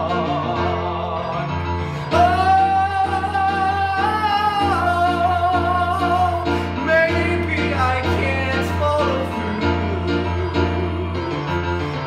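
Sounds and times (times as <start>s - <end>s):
recorded backing music: 0.0s - 12.0s.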